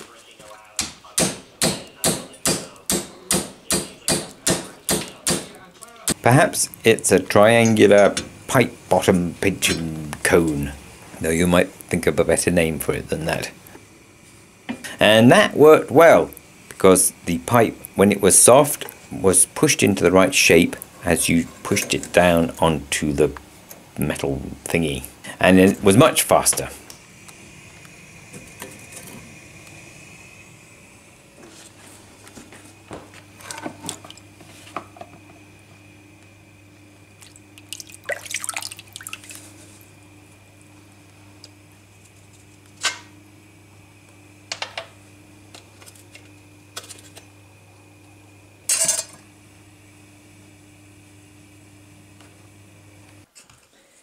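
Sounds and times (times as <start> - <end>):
low hum: 26.8 - 32.6
metal tool clattering on gas hob: 44.5 - 45.0, 48.7 - 49.2.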